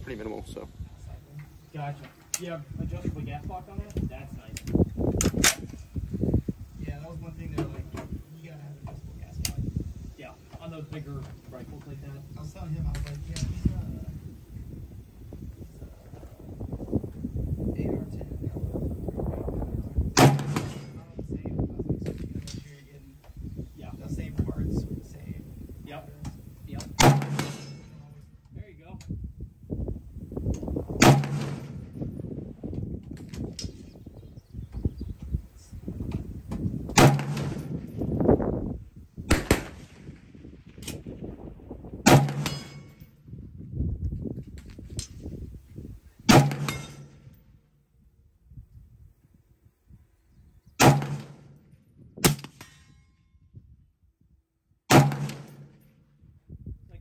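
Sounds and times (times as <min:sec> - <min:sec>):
rifle shots: 0:20.1 - 0:21.1, 0:26.8 - 0:28.1, 0:30.9 - 0:32.1, 0:36.9 - 0:38.1, 0:39.3 - 0:41.2, 0:42.0 - 0:43.0, 0:46.3 - 0:47.3, 0:50.8 - 0:52.8, 0:54.9 - 0:55.9.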